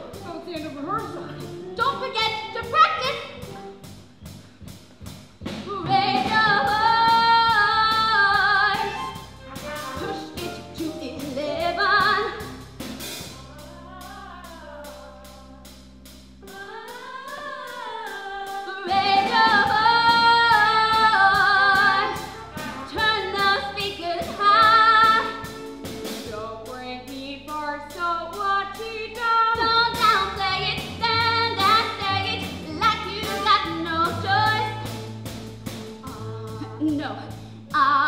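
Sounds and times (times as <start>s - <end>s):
pit band playing: 0.0s - 14.2s, 14.8s - 38.0s
girls singing: 5.6s - 12.4s, 16.4s - 25.7s, 26.3s - 34.8s.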